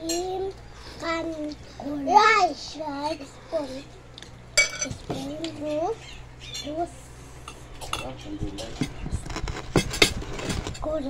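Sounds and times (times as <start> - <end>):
spoons clinking on plates: 4.6 - 5.0, 7.4 - 8.9.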